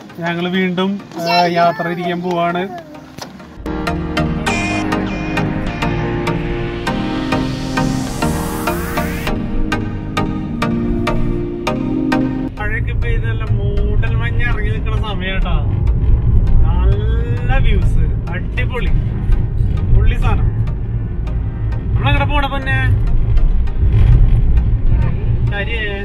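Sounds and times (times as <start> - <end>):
car driving on highway rumble: 12.6 - 26.0.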